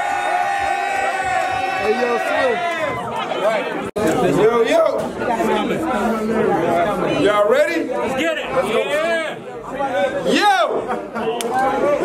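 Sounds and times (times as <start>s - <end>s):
crowd chatter: 0.0s - 12.0s.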